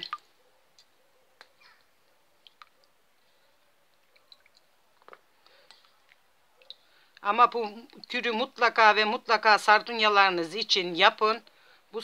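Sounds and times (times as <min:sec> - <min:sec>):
small drips: 0:00.0 - 0:08.4
wet squelches: 0:00.0 - 0:08.6.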